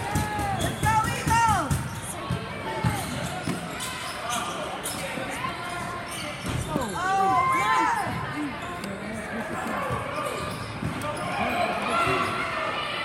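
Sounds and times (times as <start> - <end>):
voices of players and spectators: 0.0 - 13.0
sneakers squeaking on floor: 0.4 - 12.6.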